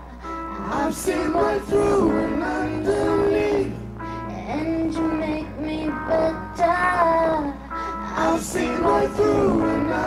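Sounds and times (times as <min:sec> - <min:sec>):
woman singing: 0:04.3 - 0:09.9.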